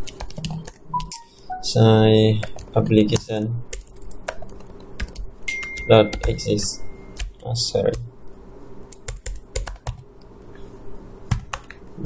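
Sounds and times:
computer keyboard keystrokes: 0.0 - 1.5, 2.4 - 6.5, 7.1 - 8.0, 8.9 - 10.0, 11.3 - 11.9.

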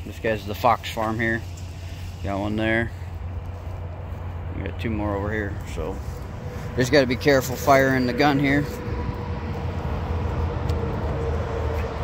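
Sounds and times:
footsteps over dry leaves: 0.2 - 12.0.

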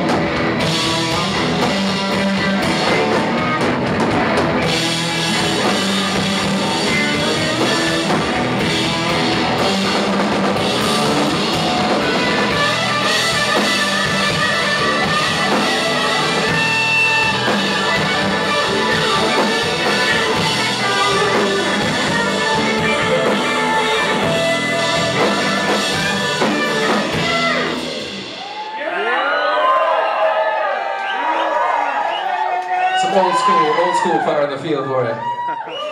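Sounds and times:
live rock band playing: 0.0 - 28.8, 32.9 - 35.9.

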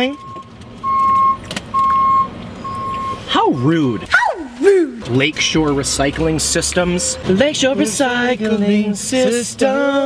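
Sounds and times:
truck back-up alarm beeping: 0.0 - 4.1.

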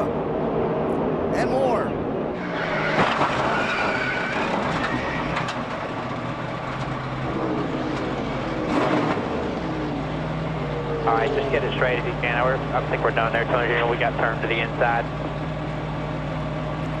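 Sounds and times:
race car engines running: 0.0 - 17.0
tyres skidding: 2.2 - 17.0.

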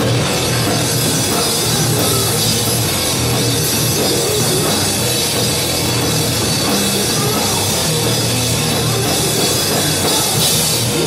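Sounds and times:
bass guitar: 0.0 - 11.0
drum kit: 0.0 - 11.0
rock band playing live: 0.0 - 11.0.

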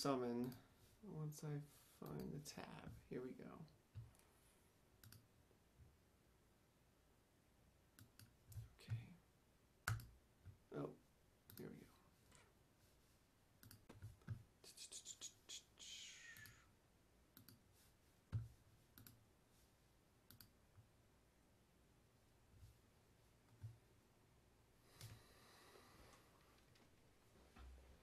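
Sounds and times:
faint computer mouse clicks: 5.0 - 5.2, 17.4 - 17.6, 19.0 - 19.2, 20.3 - 20.5.

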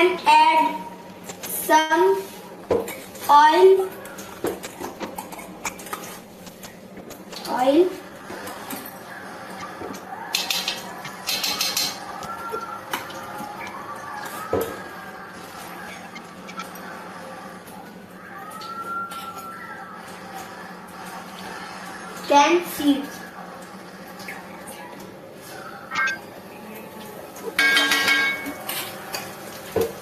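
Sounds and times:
pots and pans clinking: 27.5 - 30.0.

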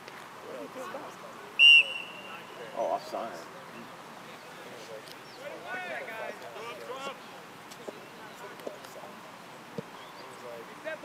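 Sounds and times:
referee's whistle blast: 1.6 - 2.6.

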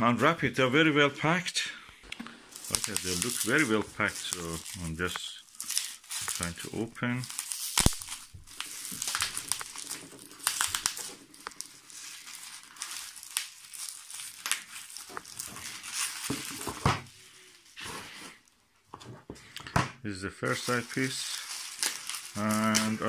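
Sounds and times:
bubble wrap crinkling: 2.4 - 18.6, 20.4 - 23.0.

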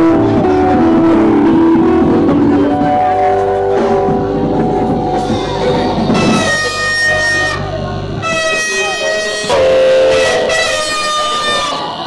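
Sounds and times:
music: 0.0 - 12.0
voices: 0.0 - 12.0
vehicle horns blaring: 1.3 - 12.0.

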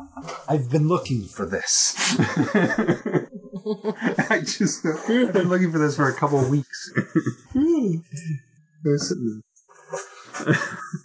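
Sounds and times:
man making wordless vocal sounds: 0.2 - 3.3, 3.9 - 9.4, 10.0 - 11.0
man laughing: 1.5 - 7.7, 10.3 - 11.0.

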